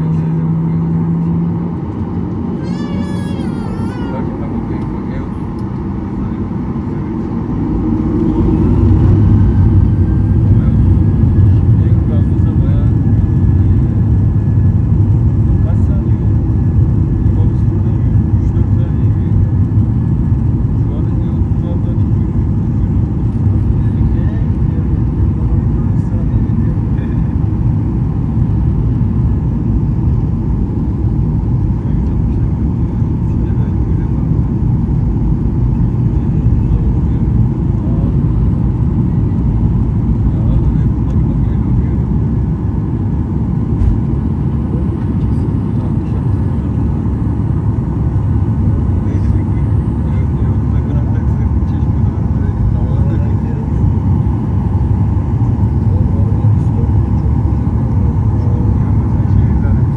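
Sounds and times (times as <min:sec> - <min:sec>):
jet engines spooling up and rumbling: 0:00.0 - 0:59.9.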